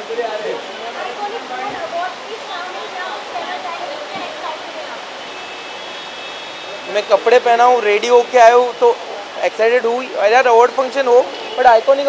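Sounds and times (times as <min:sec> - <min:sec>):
crowd chatter: 0:00.0 - 0:12.0
steady background hiss: 0:00.0 - 0:12.0.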